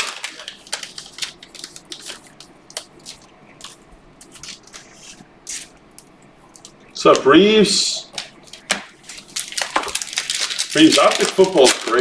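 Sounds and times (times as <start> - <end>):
cellophane wrapper crinkling: 0.0 - 7.3, 8.0 - 12.0
cards sliding and flicking: 1.8 - 5.8.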